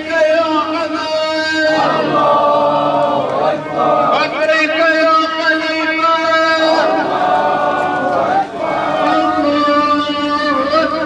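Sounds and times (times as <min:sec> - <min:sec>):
crowd chanting in unison: 0:01.5 - 0:11.0.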